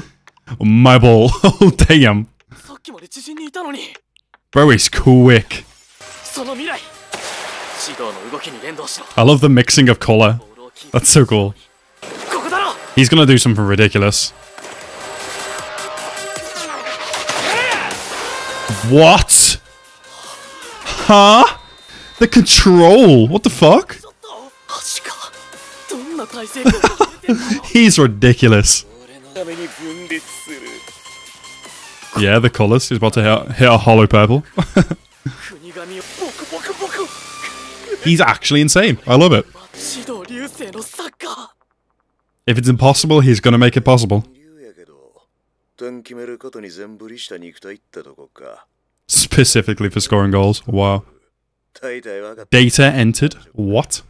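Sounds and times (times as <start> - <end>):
character speaking: 0.5 - 4.0, 6.2 - 7.0, 7.7 - 14.3, 18.7 - 19.6, 22.2 - 30.8, 35.5 - 41.6.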